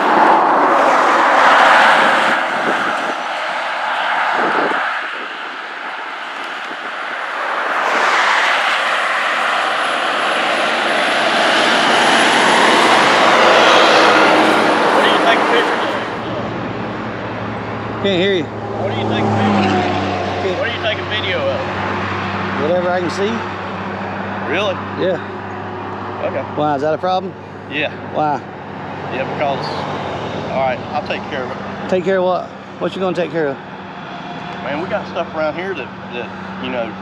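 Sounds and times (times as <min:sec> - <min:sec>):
passing vehicle engines: 0:00.0 - 0:37.0.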